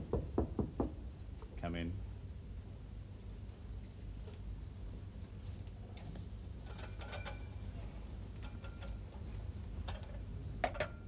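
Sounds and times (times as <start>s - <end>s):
knocking on a wooden door: 0.0s - 1.0s.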